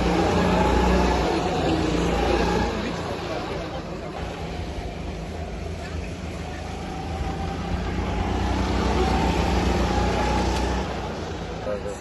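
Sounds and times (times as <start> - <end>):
go-kart engines running: 0.0 - 12.0.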